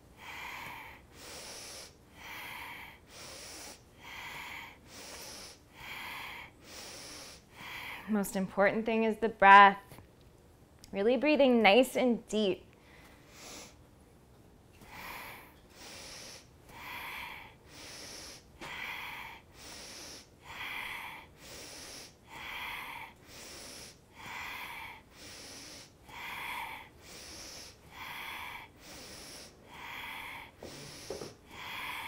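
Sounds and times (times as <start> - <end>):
woman breathing deeply: 0.0 - 8.2, 12.8 - 13.8, 14.8 - 32.0.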